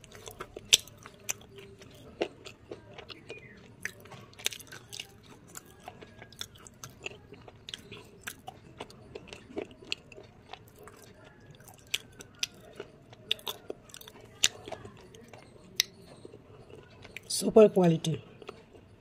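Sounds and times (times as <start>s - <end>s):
chewing slate pencil crunching: 0.0s - 17.3s.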